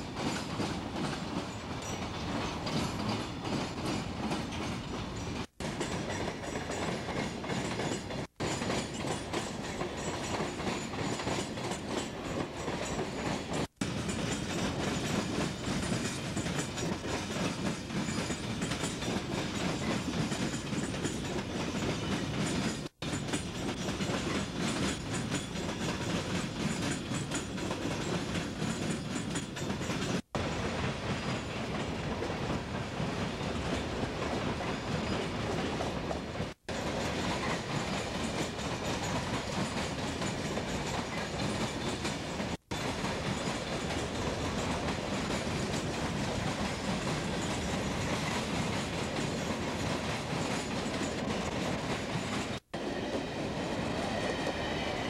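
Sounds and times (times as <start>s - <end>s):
freight train wheels clattering: 0.0s - 55.0s.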